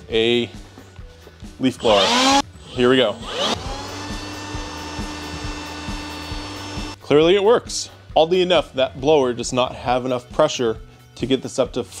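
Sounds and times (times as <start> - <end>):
leaf blower whining: 1.8 - 7.0.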